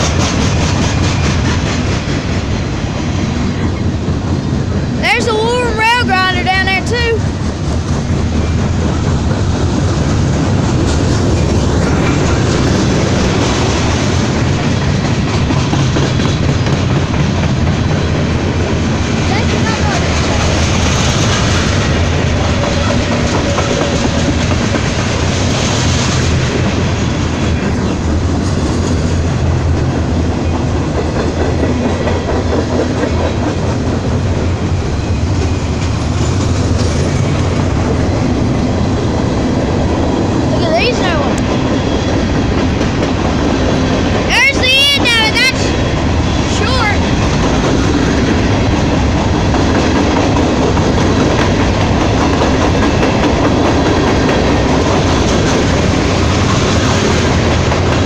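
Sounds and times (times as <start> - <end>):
freight train wheels rumbling: 0.0 - 58.0.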